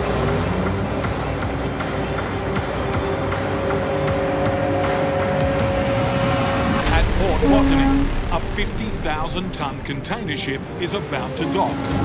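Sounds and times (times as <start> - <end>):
background music sustained note: 0.0 - 12.0.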